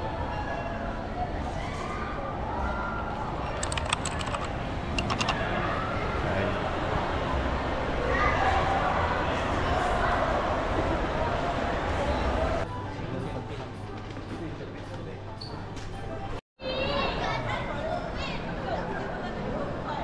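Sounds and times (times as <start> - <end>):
toy keyboard key clicks: 3.5 - 5.4
people talking in background: 5.5 - 20.0.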